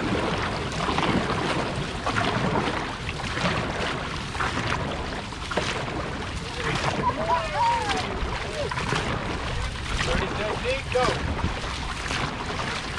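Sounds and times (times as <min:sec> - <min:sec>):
paddles splashing in water: 0:00.0 - 0:12.9
rushing water: 0:00.0 - 0:12.9
wind rumble on microphone: 0:00.0 - 0:12.9.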